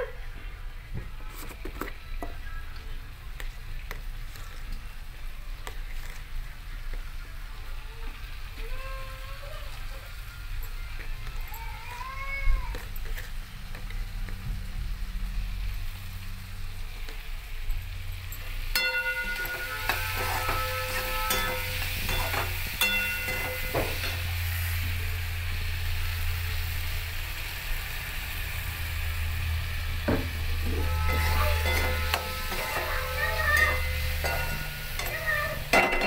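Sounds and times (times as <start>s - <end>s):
tomato masala sizzling in oil: 0.4s - 12.0s, 12.6s - 36.0s
metal spoon scraping a pan: 18.5s - 24.8s, 30.2s - 36.0s.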